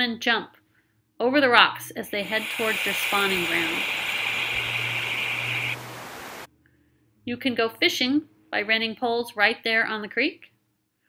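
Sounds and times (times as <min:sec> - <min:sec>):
creek water over rocks: 0:02.2 - 0:06.5.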